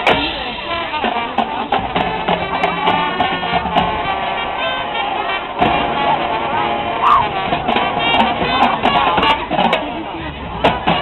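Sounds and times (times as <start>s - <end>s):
drum and cymbal strikes: 0.0s - 4.5s
marching band playing: 0.0s - 11.0s.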